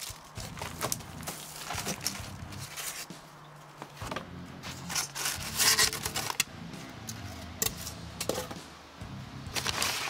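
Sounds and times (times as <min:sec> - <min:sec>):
background music with low notes: 0:00.0 - 0:10.0
foam and paper scraping cardboard: 0:00.4 - 0:03.1, 0:04.6 - 0:06.4, 0:09.6 - 0:10.0.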